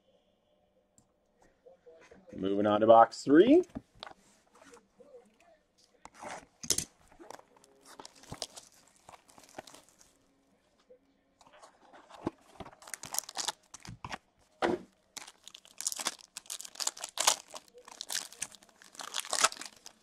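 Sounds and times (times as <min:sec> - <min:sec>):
plastic shrink wrap crinkling: 0:06.2 - 0:10.2, 0:11.6 - 0:14.2, 0:15.0 - 0:20.0
plastic pack wrapper tearing: 0:06.6 - 0:10.1, 0:12.2 - 0:14.2, 0:15.1 - 0:20.0.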